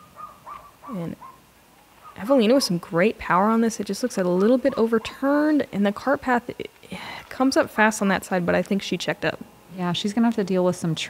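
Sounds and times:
short bird calls: 0.0s - 1.4s.

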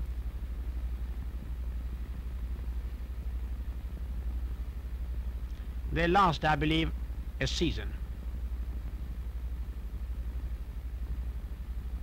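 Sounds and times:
faint hiss: 0.0s - 12.0s
steady low hum: 0.0s - 12.0s.

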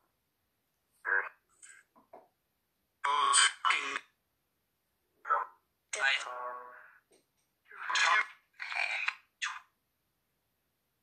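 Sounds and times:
garbled voice-like bursts: 1.0s - 1.5s, 3.0s - 4.2s, 5.2s - 7.0s, 7.7s - 9.7s.

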